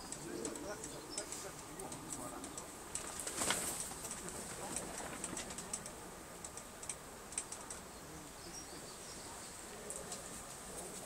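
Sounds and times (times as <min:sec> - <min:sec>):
rustle: 0:00.0 - 0:11.0.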